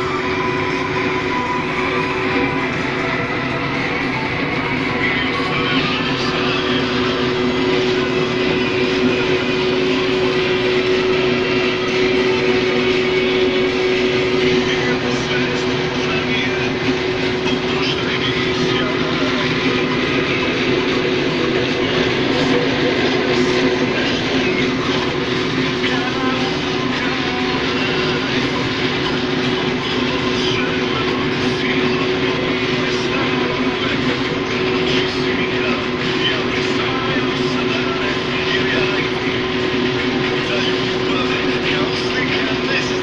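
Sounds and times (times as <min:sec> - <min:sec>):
combine harvester drone: 0:00.0 - 0:43.0.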